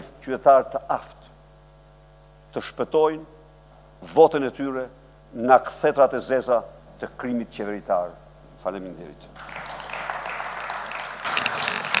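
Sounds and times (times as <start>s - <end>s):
audience applause: 9.4s - 12.0s.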